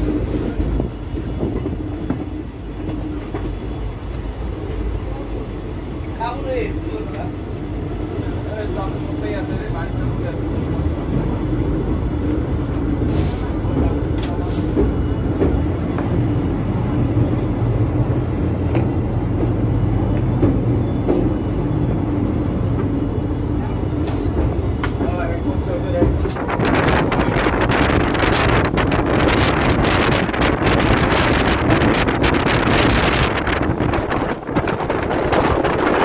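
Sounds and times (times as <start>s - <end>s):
train wheels rumbling on rail: 0.0s - 36.0s.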